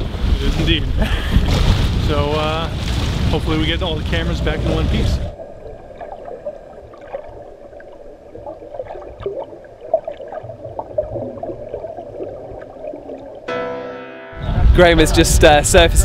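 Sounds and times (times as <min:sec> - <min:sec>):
muffled underwater rumble: 0:00.0 - 0:13.5
bubbles clicking and popping: 0:05.3 - 0:13.5.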